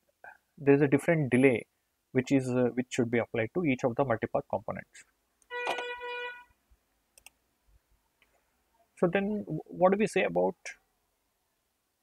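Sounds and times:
held tone with overtones: 0:05.5 - 0:06.6.

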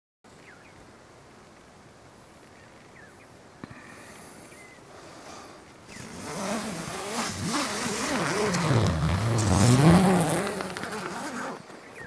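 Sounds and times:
zipper being pulled open: 0:05.9 - 0:11.7.

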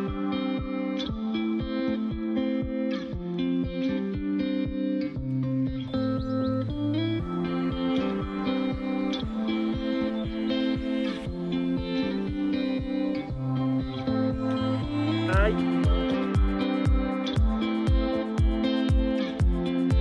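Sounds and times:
plucked melody over a beat: 0:00.0 - 0:20.0.

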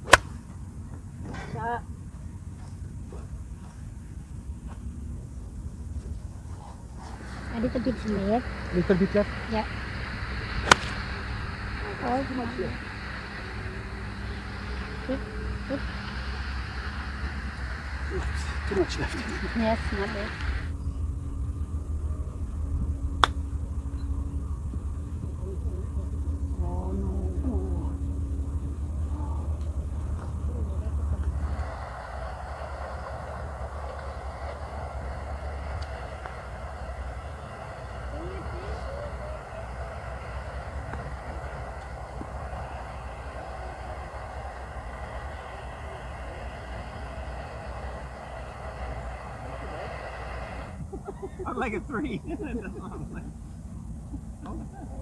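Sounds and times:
golf club striking ball: 0:00.0 - 0:00.4, 0:10.6 - 0:11.5, 0:23.2 - 0:23.4
faint voices: 0:06.0 - 0:55.0
wind rumble on microphone: 0:09.4 - 0:51.4.

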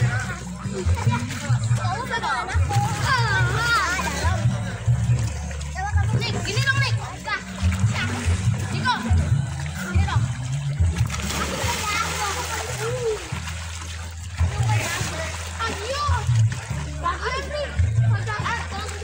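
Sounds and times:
background music with bass line: 0:00.0 - 0:19.0
water splashing: 0:00.0 - 0:19.0.

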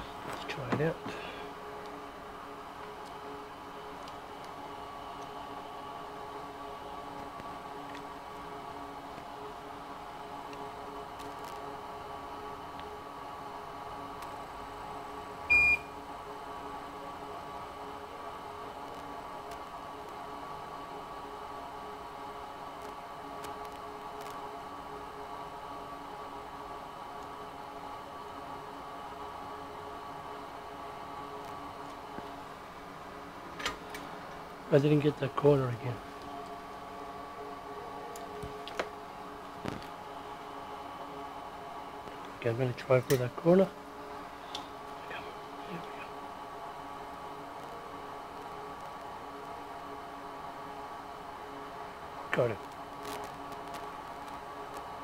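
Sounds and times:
electrical hum: 0:00.0 - 0:55.0
loud electronic beep: 0:15.5 - 0:15.9.

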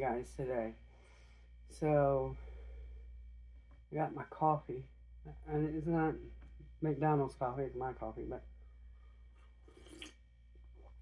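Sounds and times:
person sipping coffee: 0:09.3 - 0:11.0.

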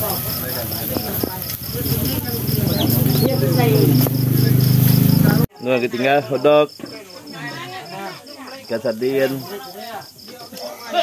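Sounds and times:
crickets chirping: 0:00.0 - 0:11.0
talking voices: 0:00.0 - 0:11.0.

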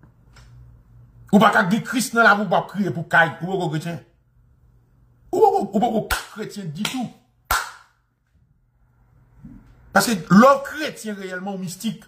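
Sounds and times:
hand clap with echo: 0:06.1 - 0:08.0.

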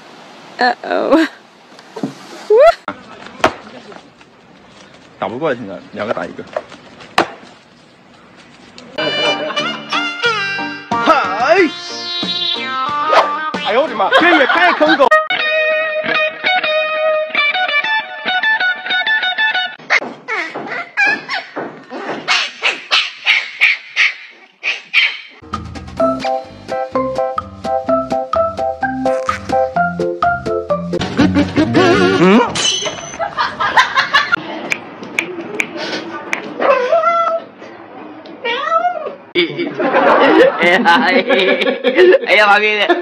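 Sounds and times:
puppy yelping: 0:19.9 - 0:25.4, 0:36.6 - 0:37.4.

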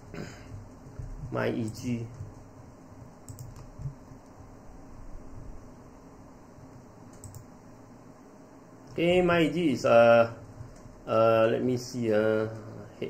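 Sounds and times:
keyboard and mouse clicks: 0:03.2 - 0:04.4, 0:07.1 - 0:07.5.

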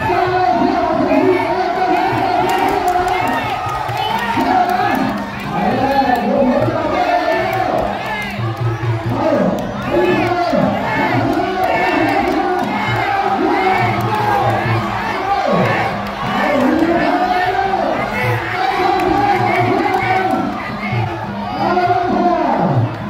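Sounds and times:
crowd shouting and cheering: 0:00.0 - 0:23.0.

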